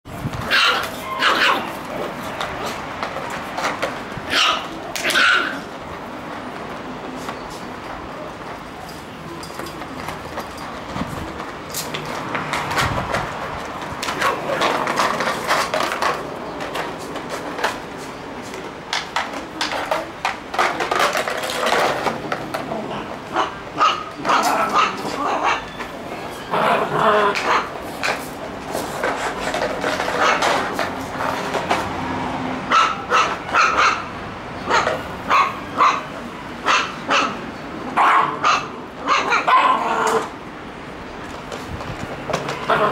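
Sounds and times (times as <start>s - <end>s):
puppies yipping and barking: 0.4s - 2.9s, 23.3s - 27.8s, 29.8s - 30.8s, 32.7s - 37.4s.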